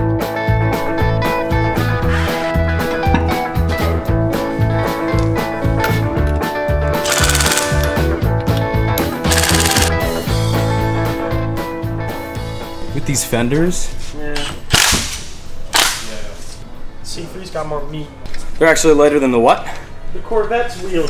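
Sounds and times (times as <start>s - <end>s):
background music with beat: 0.0s - 7.1s
impact wrench rattling: 7.0s - 8.0s, 9.3s - 10.0s.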